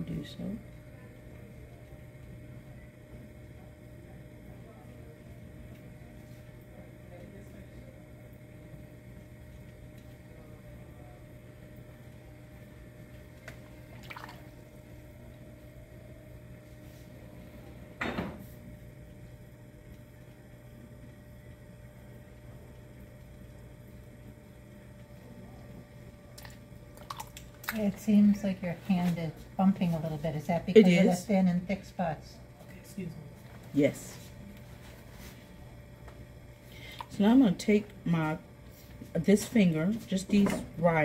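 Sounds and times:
potter's wheel humming: 0.0s - 41.0s.

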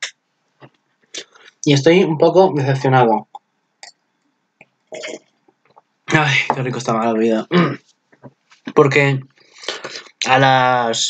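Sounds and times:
person burping: 4.9s - 5.2s, 7.3s - 7.8s
faint mouth clicks: 9.6s - 10.2s.

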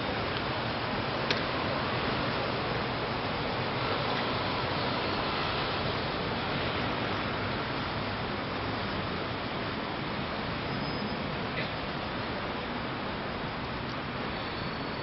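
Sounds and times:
outdoor ambient rushing noise: 0.0s - 15.0s.

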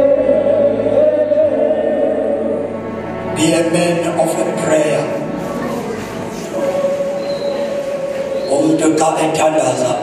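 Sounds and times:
voices singing gospel song: 0.0s - 5.0s, 5.7s - 9.8s.

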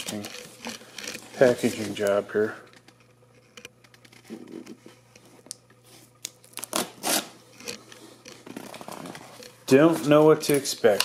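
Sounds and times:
plastic film ripping: 6.2s - 7.4s
plastic film crinkling and tearing: 6.2s - 10.2s.

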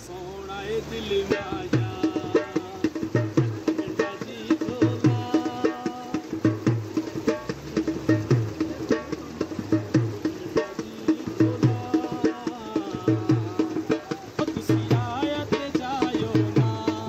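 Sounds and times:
dhol drum folk rhythm: 0.0s - 17.0s
melody over drumming: 1.3s - 17.0s.

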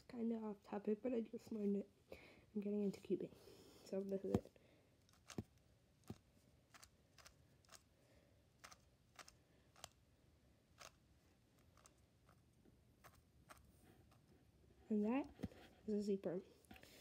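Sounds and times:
puzzle cube layers clicking: 5.0s - 7.9s, 8.6s - 10.0s, 10.8s - 11.0s.

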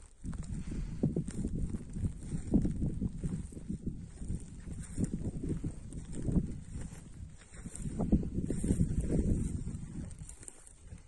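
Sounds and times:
microphone rumbling and thumping: 0.0s - 11.0s.

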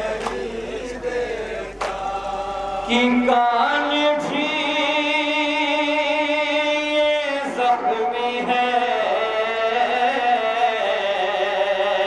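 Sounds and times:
man chanting a lament: 0.0s - 12.0s.

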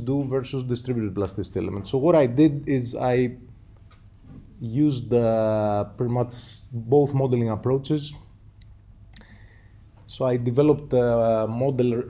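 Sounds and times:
quiet room hum: 0.0s - 12.0s.

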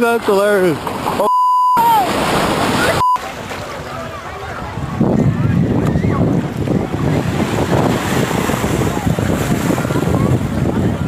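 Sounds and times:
shallow surf washing: 0.0s - 11.0s
short electronic beep: 1.2s - 1.8s, 3.0s - 3.2s
wind buffeting microphone: 2.2s - 11.0s.

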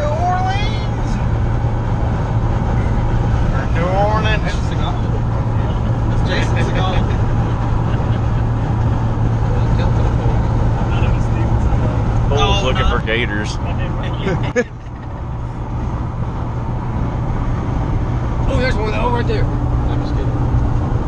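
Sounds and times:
road and engine drone in cabin: 0.0s - 21.0s.

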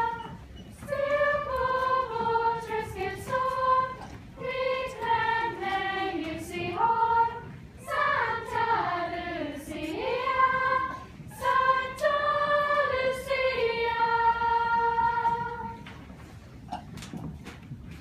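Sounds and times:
girls choir singing a carol: 0.0s - 15.9s.

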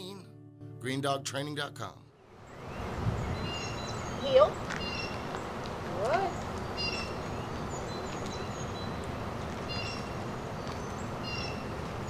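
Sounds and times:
outdoor background noise: 2.1s - 12.0s.

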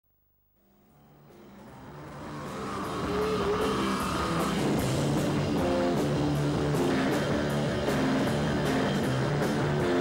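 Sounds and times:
live rock band playing: 1.3s - 10.0s.

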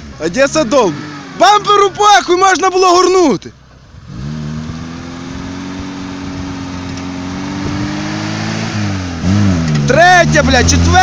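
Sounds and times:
car engine revving hard: 0.0s - 2.4s, 4.0s - 11.0s.

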